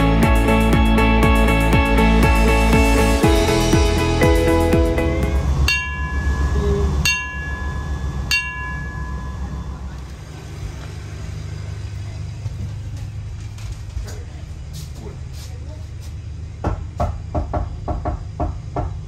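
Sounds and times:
low steady hum: 0.0s - 19.0s
ship's bell ringing: 3.6s - 10.3s
knocking on a door: 16.6s - 19.0s.

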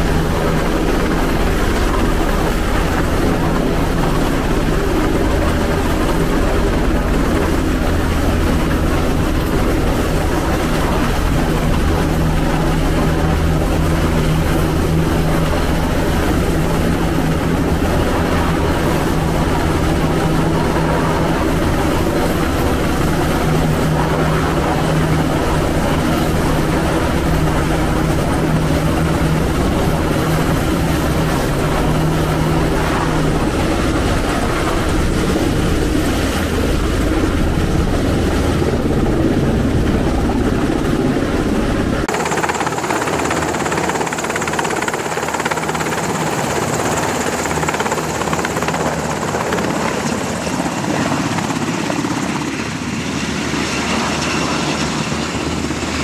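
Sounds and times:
helicopter engines and rotor: 0.0s - 56.0s.

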